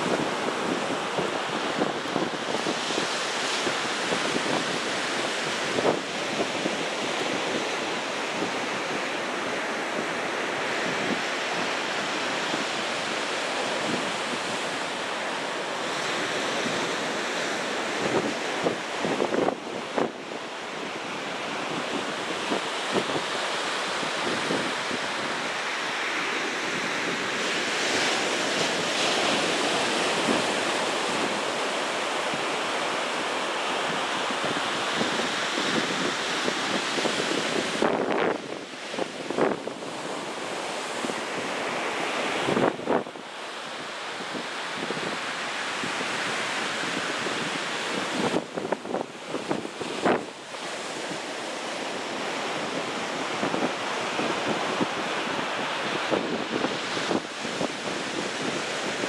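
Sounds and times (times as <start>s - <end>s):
surf breaking on a beach: 0.0s - 59.0s
wind buffeting microphone: 0.0s - 59.0s.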